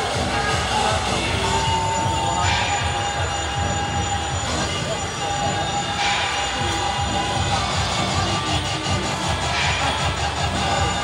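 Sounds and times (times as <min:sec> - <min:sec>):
drums and cymbals beating: 0:00.0 - 0:11.0
high horn-like notes: 0:00.0 - 0:11.0
noisy crowd: 0:00.0 - 0:11.0.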